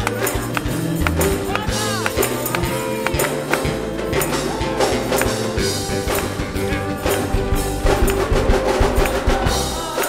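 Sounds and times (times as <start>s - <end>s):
person singing: 0.0s - 6.1s, 6.7s - 10.0s
drum kit beat: 0.0s - 10.0s
praise band playing: 0.0s - 10.0s.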